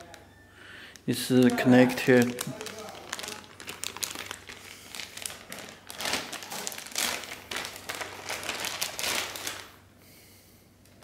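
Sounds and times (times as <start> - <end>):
plastic bag crinkling: 0.9 - 9.9.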